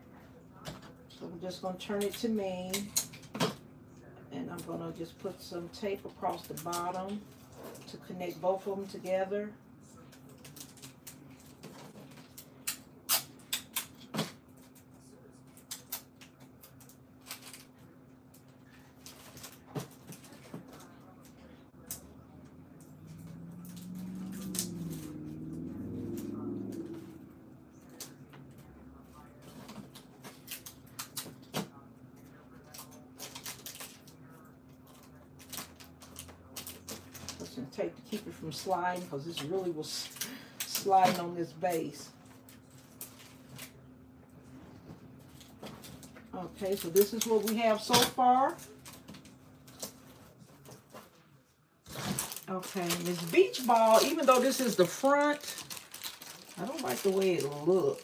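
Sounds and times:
packing tape being handled: 15.5 - 17.8, 32.6 - 34.1, 34.8 - 37.6, 45.2 - 51.1, 51.8 - 58.0
low rumble: 22.6 - 27.9
boxed toys crinkling: 51.9 - 58.0.

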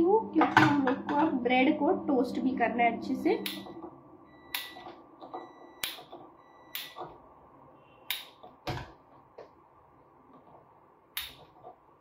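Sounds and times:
gas stove igniter clicks: 6.7 - 7.0, 8.1 - 8.4, 11.2 - 11.4.

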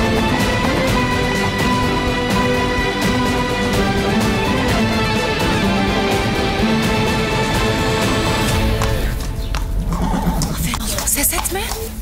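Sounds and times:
horse hooves clip-clopping: 0.0 - 2.6, 8.5 - 12.0
soundtrack music: 0.0 - 10.7.

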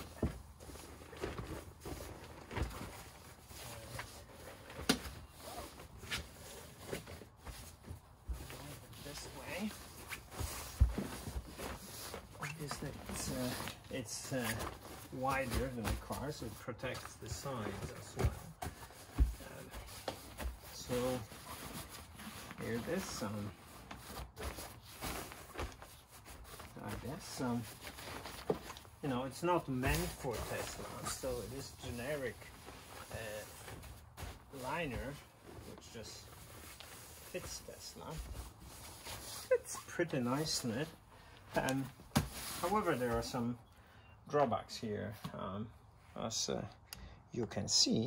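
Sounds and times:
liner rustling and shuffling: 0.0 - 43.6.

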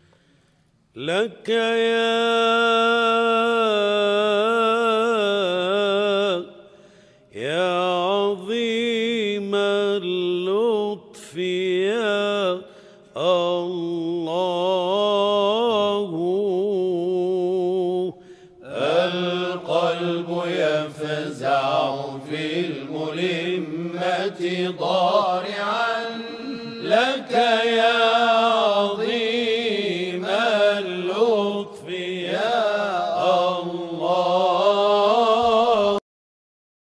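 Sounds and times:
solo voice chanting: 1.0 - 36.0
person chanting held notes: 18.6 - 36.0.

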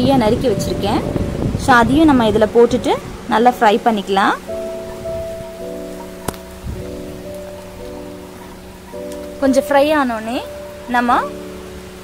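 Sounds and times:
soft background music chords: 0.0 - 12.0.

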